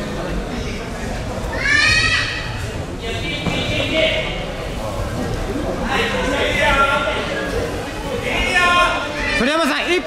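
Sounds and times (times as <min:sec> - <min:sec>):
sports hall murmur and shuffle: 0:00.0 - 0:10.0.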